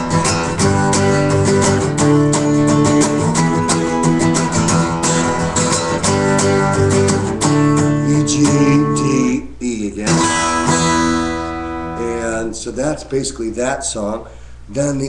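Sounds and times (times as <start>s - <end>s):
acoustic guitar strummed fast: 0.0s - 9.4s, 10.0s - 12.4s.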